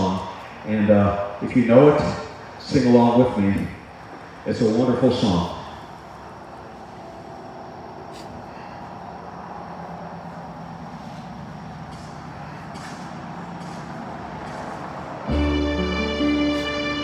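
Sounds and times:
low rumble and hiss: 0.0 - 12.6.

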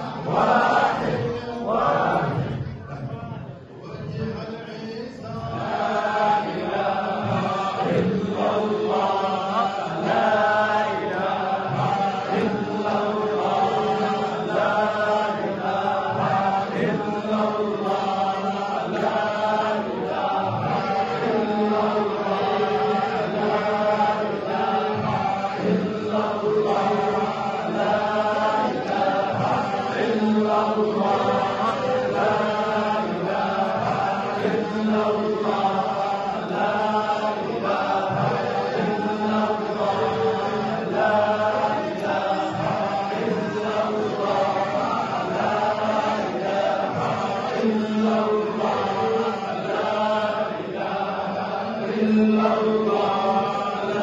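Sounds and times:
men chanting in unison: 0.0 - 54.0.

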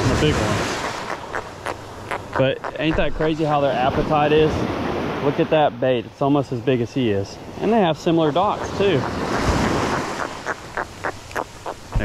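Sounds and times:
small surf washing: 0.0 - 5.9, 7.3 - 12.0.

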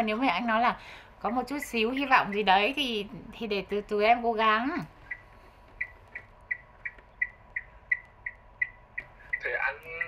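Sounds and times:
faint steady tone: 4.8 - 10.0.

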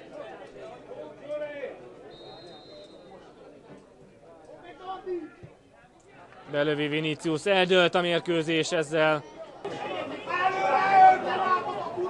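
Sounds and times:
referee whistle blast: 2.1 - 3.1
faint voices: 7.8 - 12.0.

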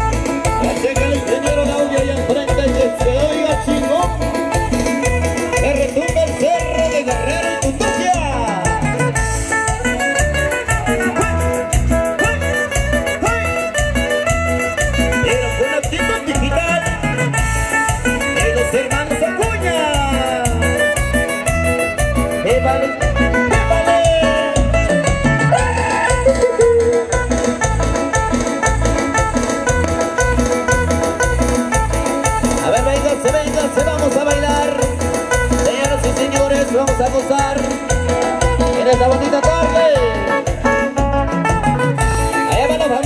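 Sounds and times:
band playing latin dance music: 0.0 - 43.0.

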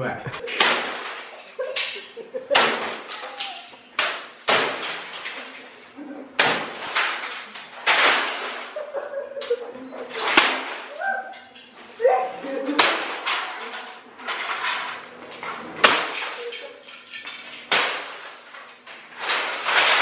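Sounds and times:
hammer smashing objects: 0.4 - 8.9, 10.1 - 11.0, 11.8 - 20.0
debris clattering and clinking: 0.4 - 20.0.

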